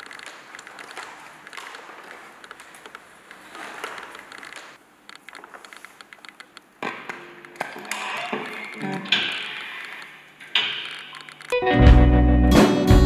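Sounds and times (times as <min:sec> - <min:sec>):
electric guitar picking: 0:11.5 - 0:13.0
full band playing: 0:11.6 - 0:13.0.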